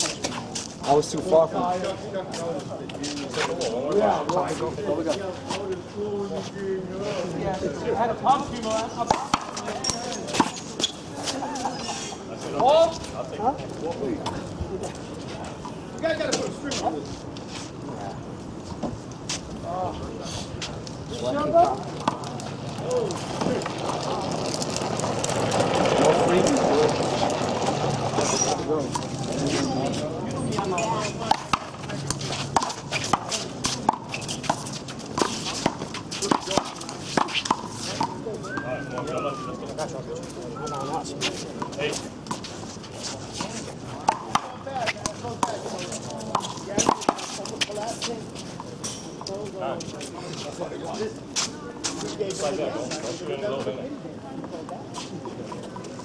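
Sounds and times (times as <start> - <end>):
voices talking and shouting: 0.0 - 18.4, 19.3 - 56.0.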